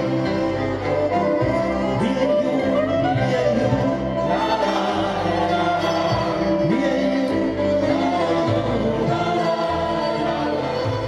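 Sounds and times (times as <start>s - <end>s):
double bass: 0.0s - 11.0s
fiddle melody: 0.0s - 11.0s
people singing: 1.0s - 11.0s.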